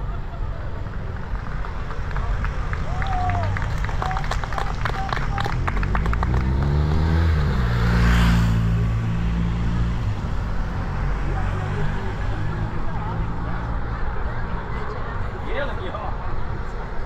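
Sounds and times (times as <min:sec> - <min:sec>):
race cars passing: 0:00.0 - 0:17.0
spectators clapping: 0:00.8 - 0:07.3.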